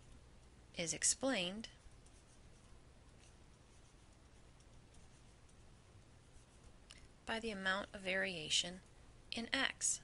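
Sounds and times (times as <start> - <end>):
low steady hum: 0.0 - 10.0
stylus scratching on tablet: 1.2 - 6.8.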